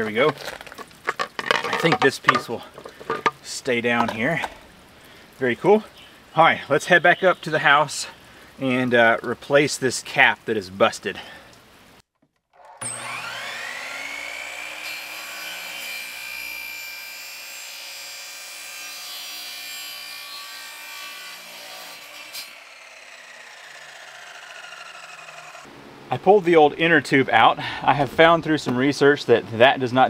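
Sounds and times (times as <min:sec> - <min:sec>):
miter saw whining and cutting: 0:12.7 - 0:25.7.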